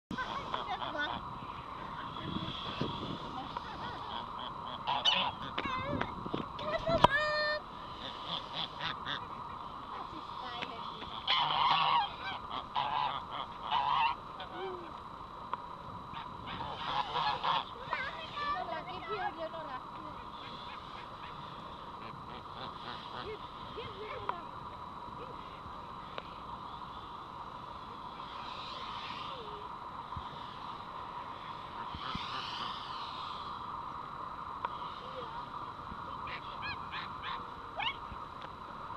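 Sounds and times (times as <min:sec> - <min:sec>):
geese honking: 0:00.1 - 0:14.8, 0:16.1 - 0:24.6, 0:25.2 - 0:33.8, 0:36.1 - 0:38.2
outdoor background noise: 0:00.1 - 0:38.9.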